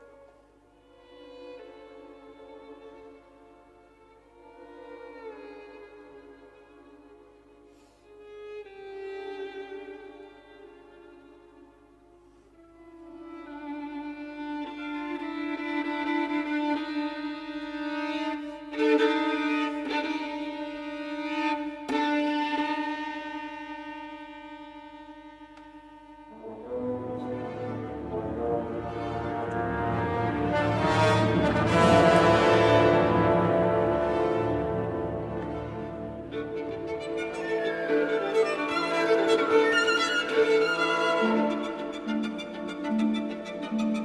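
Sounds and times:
orchestral strings holding long notes: 0.0s - 44.0s
solo violin playing: 0.0s - 44.0s.

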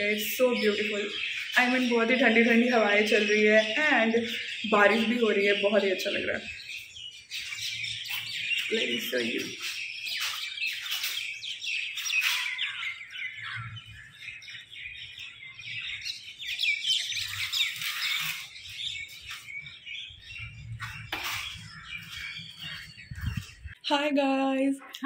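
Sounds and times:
birds chirping: 0.0s - 25.0s.

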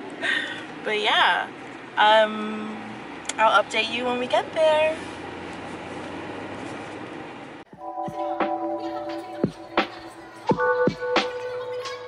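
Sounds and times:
car cabin road and engine noise: 0.0s - 12.0s
music with held notes: 7.7s - 12.0s.

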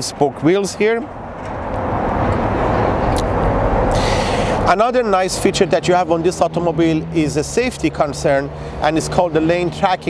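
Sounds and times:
passing vehicle rushing: 0.0s - 10.0s.

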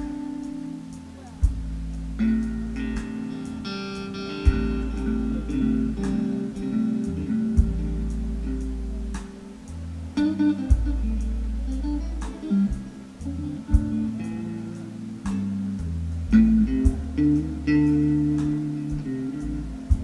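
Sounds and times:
blues band playing: 0.0s - 20.0s
drum hits: 4.5s - 5.2s, 7.6s - 8.1s.

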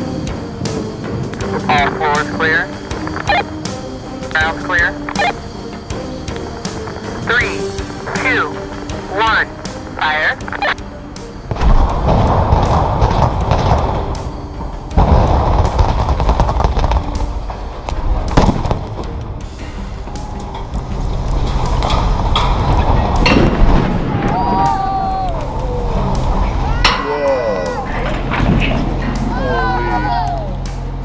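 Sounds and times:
low rumble of collapse: 11.2s - 26.9s, 27.8s - 29.4s
explosive charges banging: 11.4s - 19.5s, 20.6s - 24.7s.

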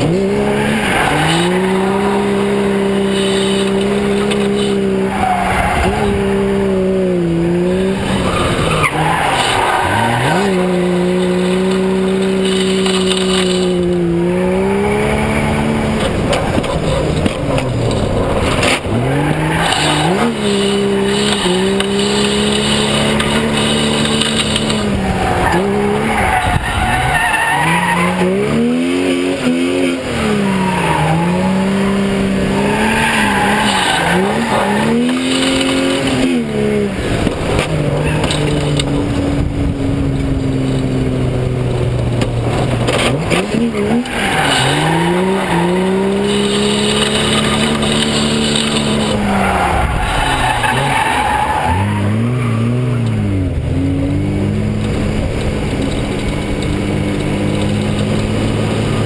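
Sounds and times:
car engine revving: 0.0s - 59.0s
tyres squealing: 7.9s - 39.0s, 43.0s - 53.2s.

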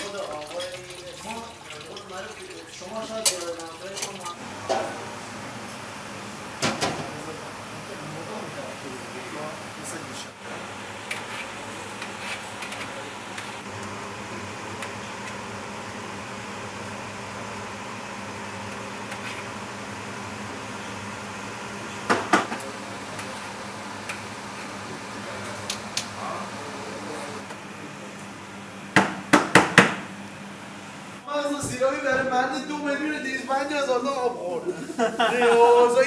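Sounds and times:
kitchen equipment hum and hiss: 0.0s - 36.0s
sharp knocks on hard surface: 29.0s - 30.0s.

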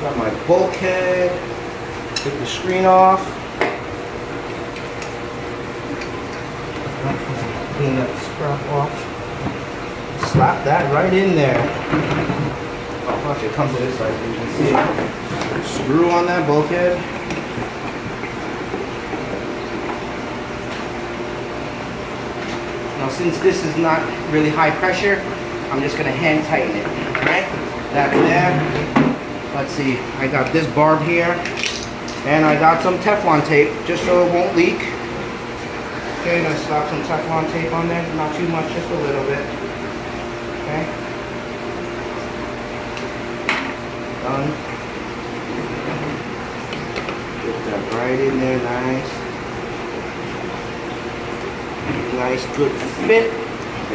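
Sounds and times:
equipment mechanical hum: 0.0s - 53.9s.

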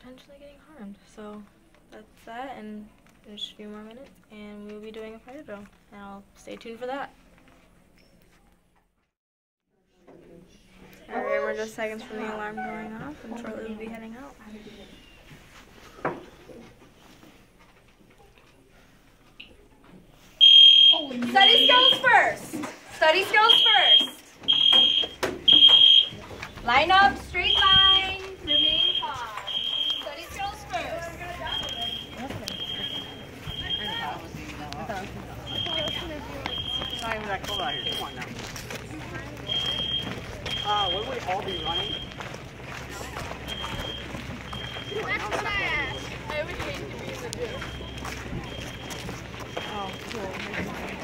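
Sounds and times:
fire alarm beeping: 20.4s - 22.4s, 23.2s - 38.4s, 39.4s - 50.8s.

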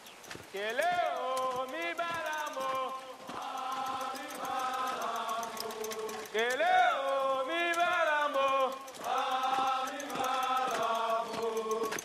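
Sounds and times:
faint rapid clicking: 0.0s - 12.0s.

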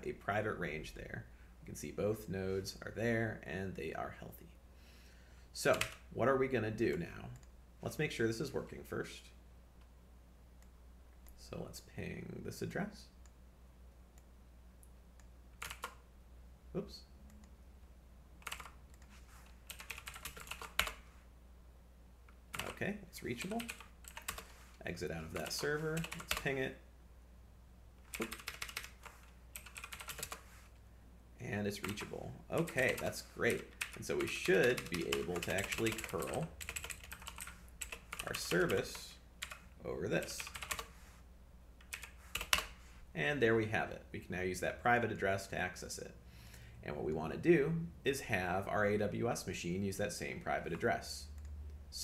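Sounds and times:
typing on computer keyboard: 5.7s - 6.0s, 15.6s - 16.0s, 18.4s - 19.1s, 19.7s - 21.0s, 22.5s - 22.8s, 23.4s - 24.5s, 25.4s - 26.5s, 28.1s - 30.4s, 31.8s - 39.6s, 40.3s - 40.9s, 41.8s - 42.7s.

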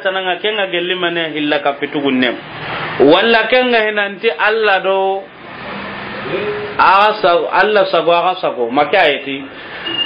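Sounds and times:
man lecturing: 0.0s - 5.3s, 6.3s - 9.6s.

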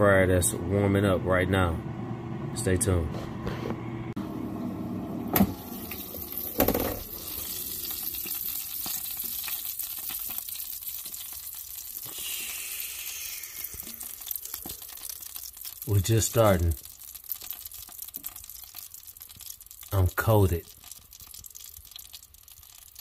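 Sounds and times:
chicken sizzling in air fryer: 4.3s - 23.0s.

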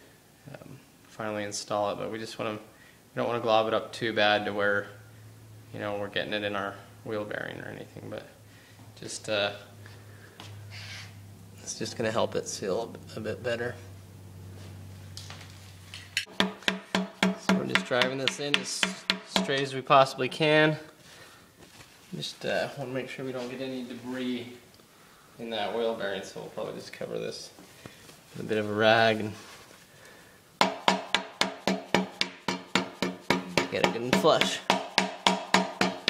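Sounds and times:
low steady hum: 0.0s - 31.5s
hammer taps on metal: 16.2s - 19.6s
hammer tapping on metal: 16.2s - 19.7s, 30.6s - 36.0s.

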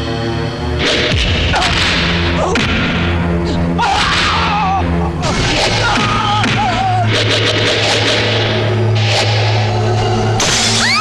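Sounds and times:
held background music tones: 0.0s - 11.0s.

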